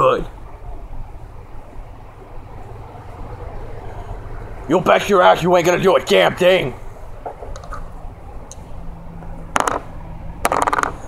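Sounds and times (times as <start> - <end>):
dice rattling in hands: 9.6 - 11.0.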